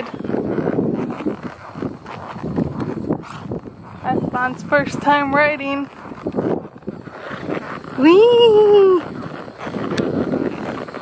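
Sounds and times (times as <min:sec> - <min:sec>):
outdoor background noise: 0:00.0 - 0:11.0
person calling weee: 0:08.0 - 0:09.2.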